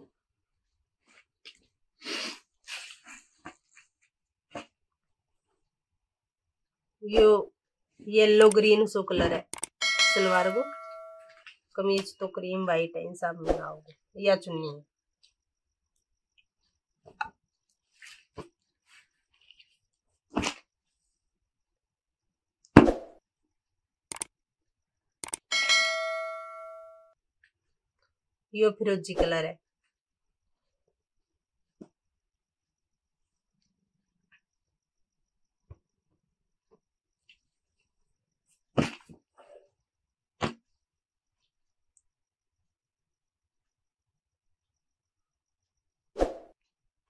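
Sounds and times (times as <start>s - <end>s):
mouse clicks: 9.5s - 9.8s, 24.1s - 24.3s, 25.2s - 25.4s
bell ding: 9.8s - 11.3s, 25.5s - 27.1s.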